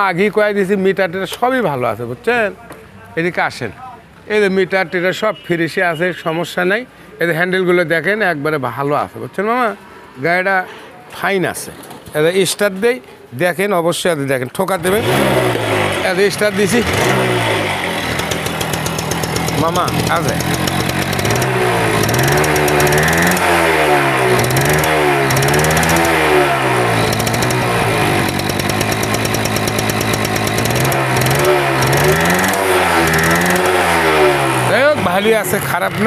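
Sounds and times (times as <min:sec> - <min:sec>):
motorcycle engine revving: 0:14.8 - 0:36.0.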